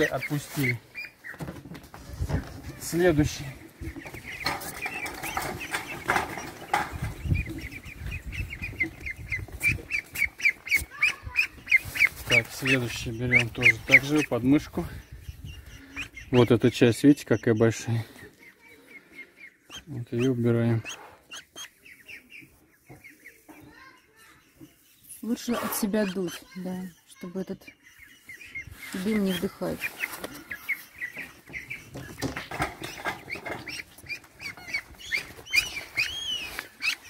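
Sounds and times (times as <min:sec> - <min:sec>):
wing flapping and scuffling: 0:00.0 - 0:15.0, 0:28.6 - 0:37.0
ducklings peeping: 0:00.0 - 0:37.0.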